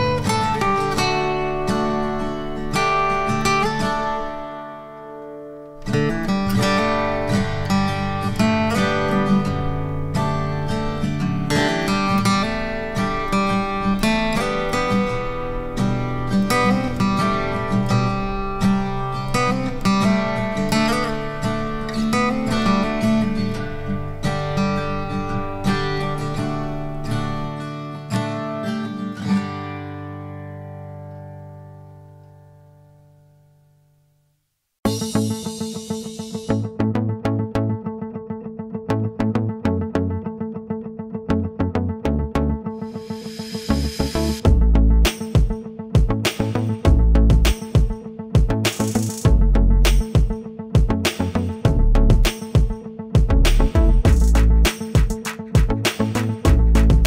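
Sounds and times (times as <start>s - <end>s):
plucked acoustic guitar music: 0.0s - 33.8s, 34.8s - 57.0s.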